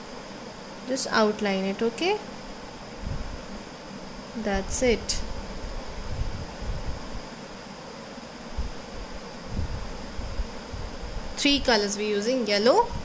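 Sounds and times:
background hiss: 0.0 - 13.0
faint high whine: 0.0 - 13.0.

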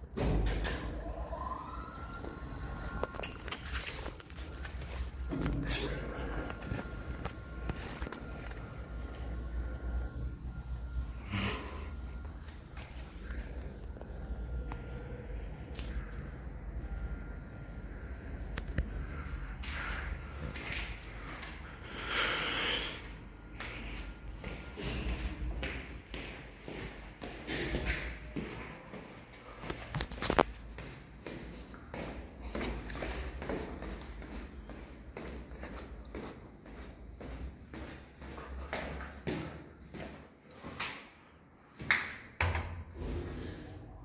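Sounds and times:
footsteps on concrete stairs: 24.4 - 40.9.

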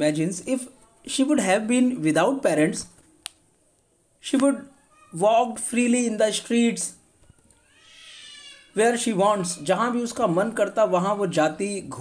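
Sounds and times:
faint animal cry: 4.7 - 5.2, 7.3 - 8.8.

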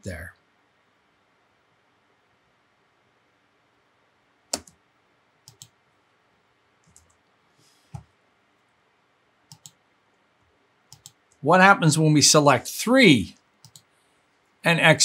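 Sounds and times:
computer mouse clicking: 4.5 - 4.8, 5.4 - 5.8, 6.8 - 7.3, 9.5 - 9.8, 10.9 - 11.4, 13.6 - 14.0.

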